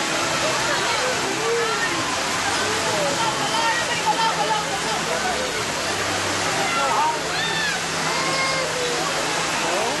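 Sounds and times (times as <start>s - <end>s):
crowd chattering: 0.0s - 10.0s
fountain water splashing: 0.0s - 10.0s.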